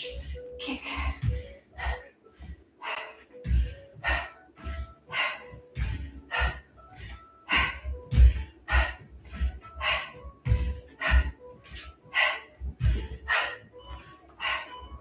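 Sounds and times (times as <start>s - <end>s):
bare feet thudding on mat: 3.4s - 14.6s.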